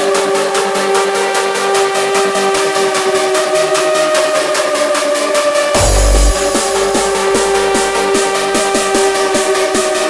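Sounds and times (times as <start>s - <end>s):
hardstyle electronic dance music: 0.2s - 10.0s.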